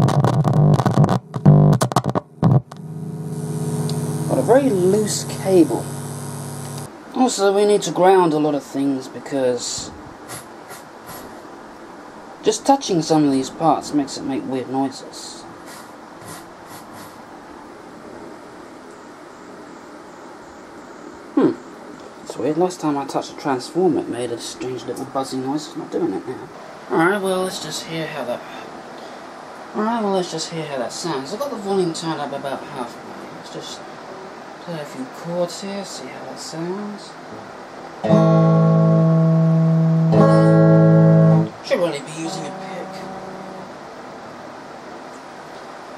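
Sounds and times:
electric guitar chords ringing: 0.0s - 6.9s, 38.0s - 44.0s
amplifier hiss and hum: 0.0s - 45.9s.

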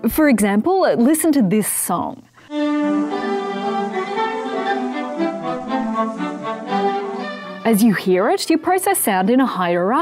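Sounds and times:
orchestral music with bowed strings: 2.5s - 8.1s
violin melody: 2.5s - 8.3s.

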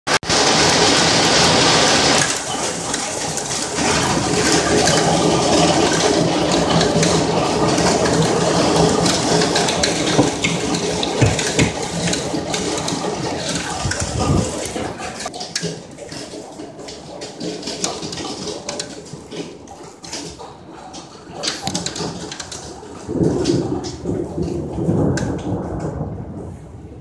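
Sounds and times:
hail clattering: 0.1s - 26.3s.

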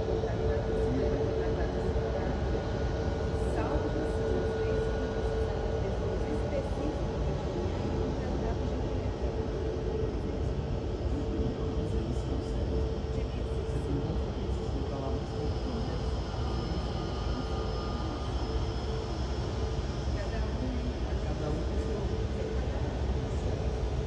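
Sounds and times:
airliner engines whining at idle: 0.0s - 24.0s
faint high whine: 0.0s - 24.0s.

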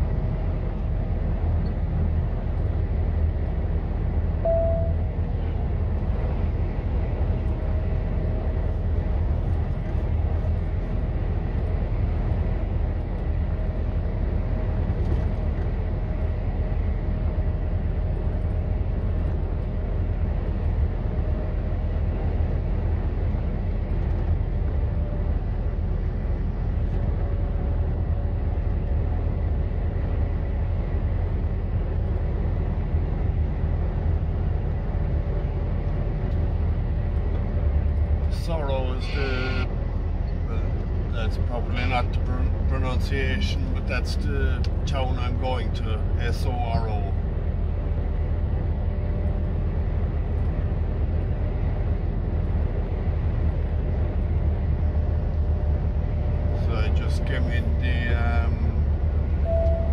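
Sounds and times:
lorry engine and tyre drone: 0.0s - 59.9s.

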